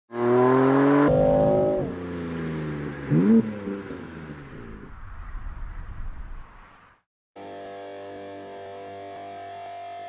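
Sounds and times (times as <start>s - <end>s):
car engine accelerating: 0.1s - 5.1s.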